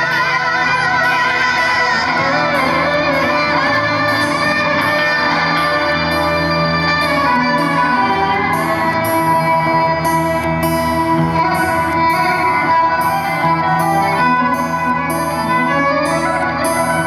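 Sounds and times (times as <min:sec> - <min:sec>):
band playing guitars and fiddle: 0:00.0 - 0:17.0.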